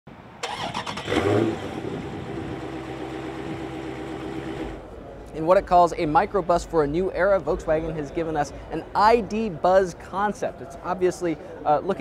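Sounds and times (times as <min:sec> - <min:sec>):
car engine starting and revving: 0:00.4 - 0:04.8.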